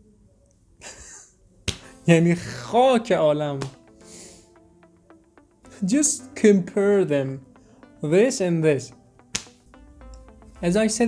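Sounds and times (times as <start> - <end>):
man laughing aloud: 0.8 - 1.4
man stifled laugh: 0.8 - 1.4.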